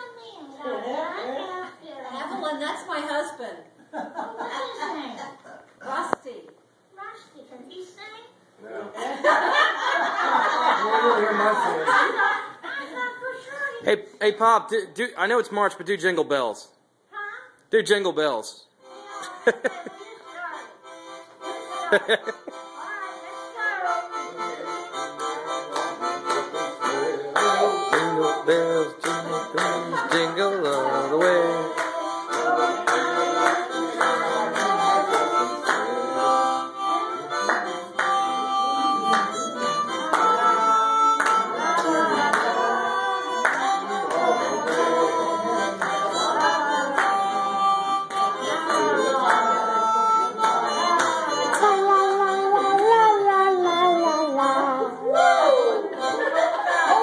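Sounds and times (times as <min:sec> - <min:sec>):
harmonica playing: 0:18.8 - 0:57.0.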